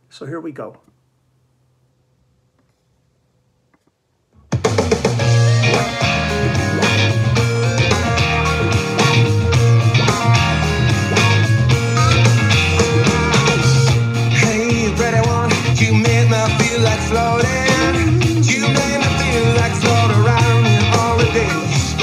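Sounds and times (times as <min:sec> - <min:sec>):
rock band playing loudly: 0:04.6 - 0:22.0.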